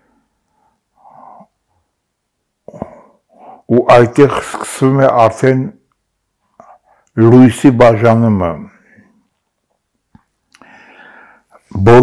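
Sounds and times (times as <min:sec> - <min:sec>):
man breathing: 0:00.0 - 0:01.8, 0:02.7 - 0:03.7, 0:10.5 - 0:11.7
man speaking: 0:03.7 - 0:05.8, 0:07.2 - 0:08.8, 0:11.6 - 0:12.0.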